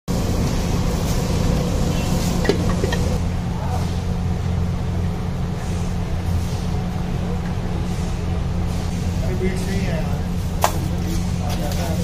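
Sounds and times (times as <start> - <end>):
street background rumble and hum: 0.1 - 12.0.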